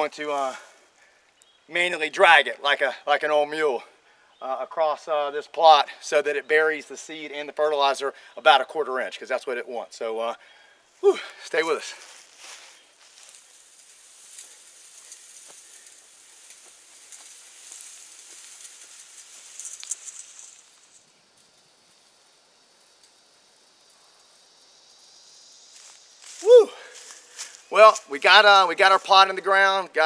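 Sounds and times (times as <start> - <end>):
chain-link fencing scraping soil: 12.3 - 21.6.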